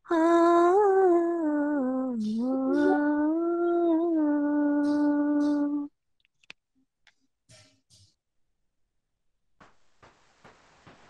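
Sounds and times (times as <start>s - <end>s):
young woman singing: 0.0s - 5.9s.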